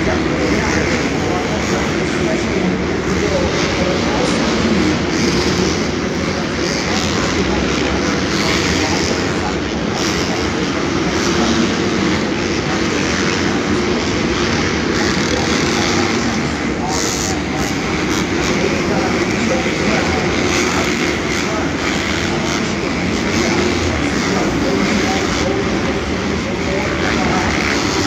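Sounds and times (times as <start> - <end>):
crowd chatter: 0.0 - 28.0
dirt bike engines revving: 0.0 - 28.0.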